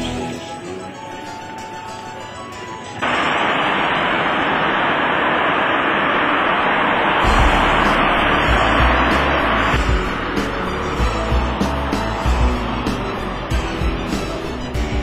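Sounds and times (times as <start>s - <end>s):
road traffic noise: 3.0s - 15.0s
deep rumbling: 6.1s - 15.0s.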